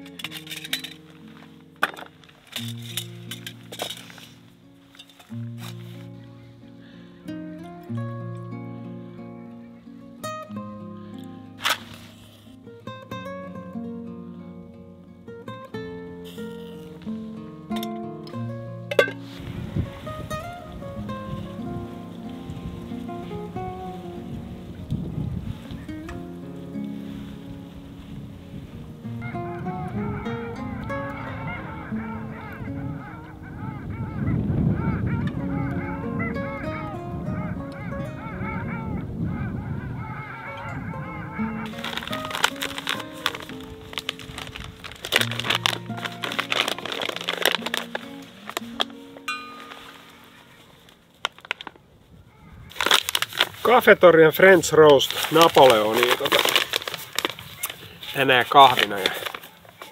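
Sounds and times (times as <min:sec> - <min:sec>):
sharp rustling: 0:00.0 - 0:07.1, 0:11.2 - 0:12.7, 0:16.1 - 0:33.4, 0:41.0 - 0:51.8, 0:52.6 - 0:59.9
guitar music: 0:00.0 - 0:51.6
waterbirds honking and calling: 0:29.3 - 0:48.6.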